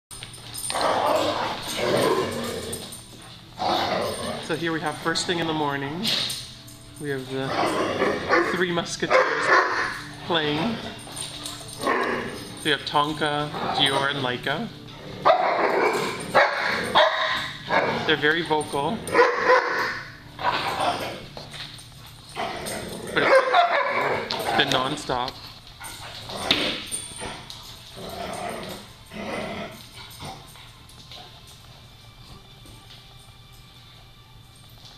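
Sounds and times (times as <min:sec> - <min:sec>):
dogs barking and growling: 0:00.1 - 0:32.0
dog barking: 0:08.2 - 0:10.1, 0:15.2 - 0:18.0, 0:19.1 - 0:20.1, 0:23.2 - 0:24.3.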